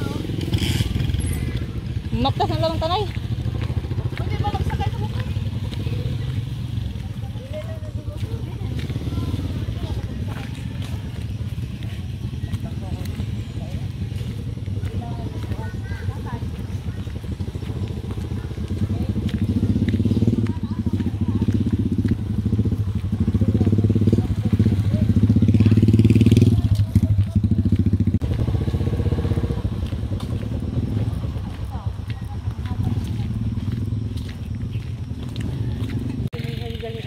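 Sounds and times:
small motorcycle engine running: 0.0 - 37.0.

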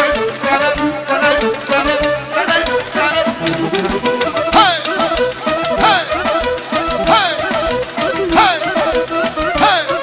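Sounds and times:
lead instrument swooping melody: 3.0 - 9.3
steady drum beat: 3.0 - 10.0.

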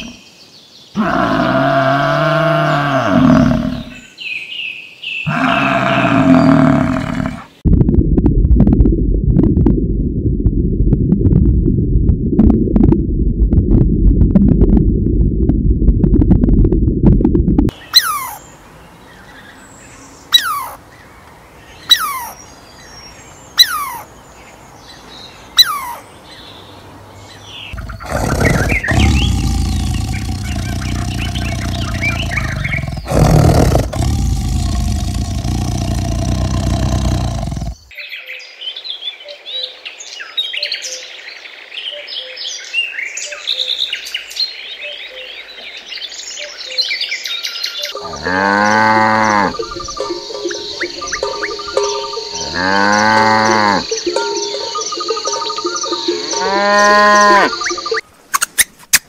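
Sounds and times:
small birds chirping: 17.7 - 37.9, 42.6 - 58.8
sharp whistling animal calls: 17.9 - 18.4, 20.3 - 20.8, 21.9 - 22.4.

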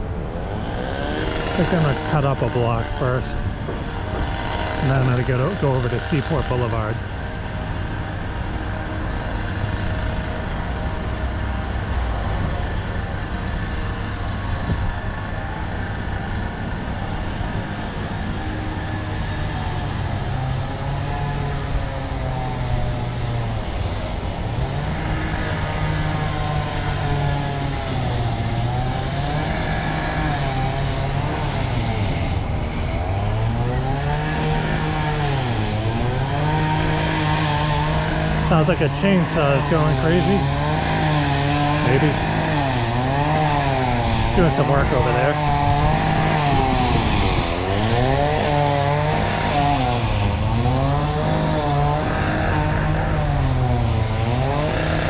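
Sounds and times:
power tool engine revving: 0.5 - 12.7, 17.2 - 55.0.

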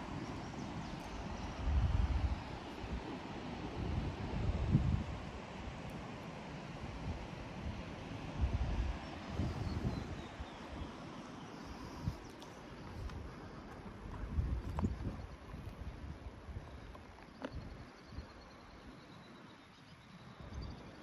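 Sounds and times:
wind buffeting microphone: 0.0 - 5.7, 7.0 - 11.0, 12.9 - 18.4
outdoor rush of air: 0.0 - 21.0.

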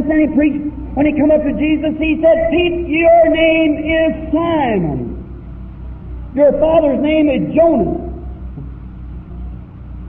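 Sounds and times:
man preaching: 0.0 - 5.2, 6.3 - 8.2
low recording hum: 0.0 - 10.0.

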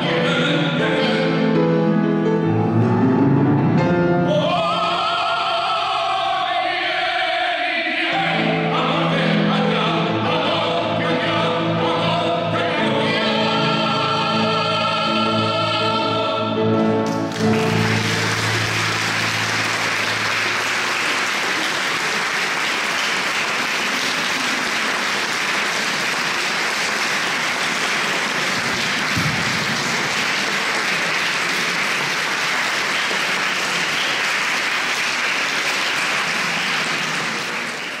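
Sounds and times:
opera duet with piano: 0.0 - 22.3
audience applauding: 17.0 - 38.0.

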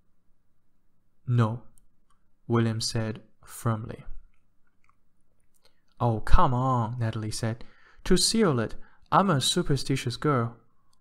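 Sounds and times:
person speaking: 1.2 - 11.0.

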